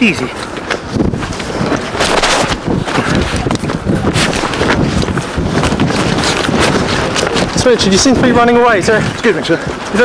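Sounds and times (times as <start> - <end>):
wind buffeting microphone: 0.0 - 10.0
microphone handling rustle and knocks: 0.1 - 10.0.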